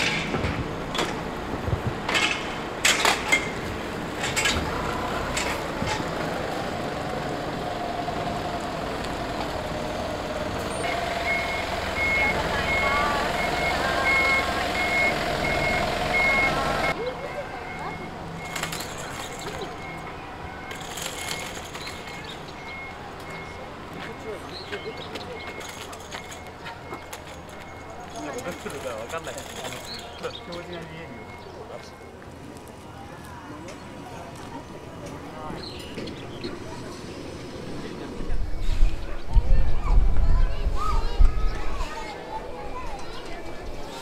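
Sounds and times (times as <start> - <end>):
bus engine running: 0.0 - 33.0
reversing alarm beeps: 11.0 - 28.8, 29.8 - 32.3.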